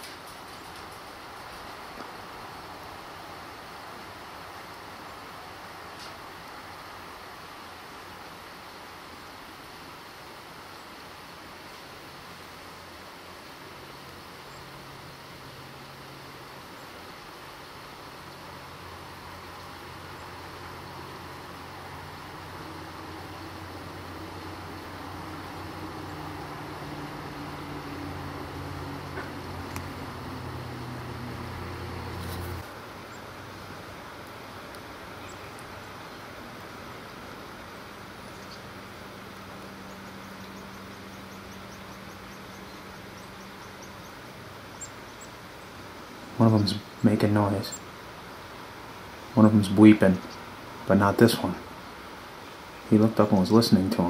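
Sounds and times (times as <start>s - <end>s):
low mechanical hum: 0.0s - 54.0s
outdoor hiss: 0.0s - 54.0s.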